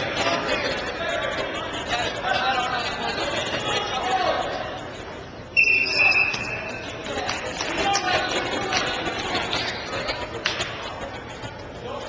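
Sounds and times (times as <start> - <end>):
crowd chatter in a gym: 0.0 - 12.0
referee's whistle blast: 5.6 - 6.7.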